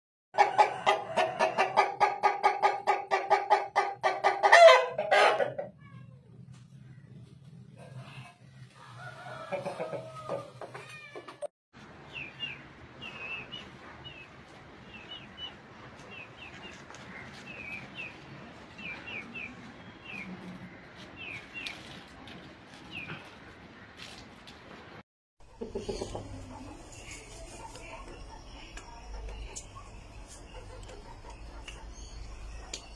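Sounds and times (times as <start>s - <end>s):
rooster clucking: 0.4s - 5.8s, 8.9s - 11.4s, 25.4s - 32.7s.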